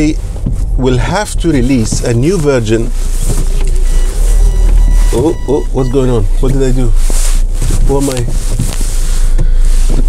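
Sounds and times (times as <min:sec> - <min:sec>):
car driving rumble inside cabin: 0:00.0 - 0:10.0
faint tones: 0:01.6 - 0:07.0.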